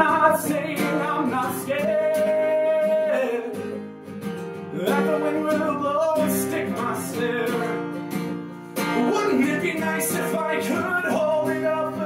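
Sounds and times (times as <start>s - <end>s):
acoustic guitar strumming: 0.0s - 12.0s
man singing long note: 9.0s - 9.7s.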